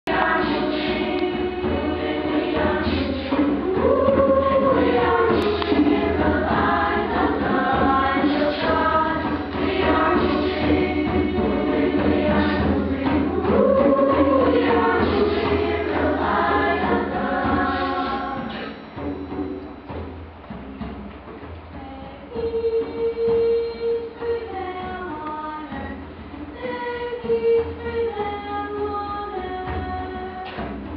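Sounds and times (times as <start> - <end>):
children's choir singing: 0.1 - 19.6.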